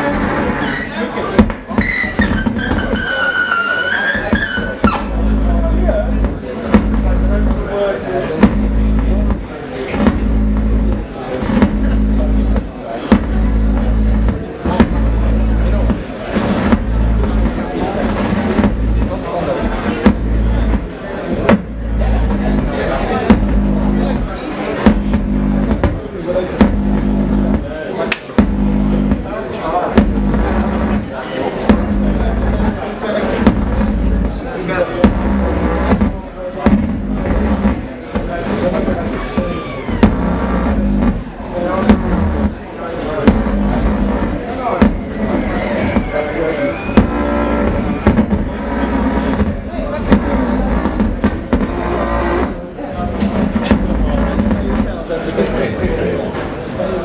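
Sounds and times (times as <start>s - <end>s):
buzzing synthesizer tones: 0.0s - 27.8s, 28.4s - 55.0s
low pulsing synthesizer drones: 5.0s - 7.7s, 8.3s - 12.6s, 39.2s - 42.6s, 43.3s - 49.6s.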